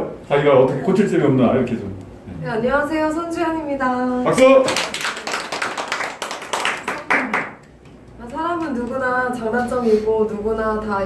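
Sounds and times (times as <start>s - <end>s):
group of people clapping: 4.4s - 8.9s.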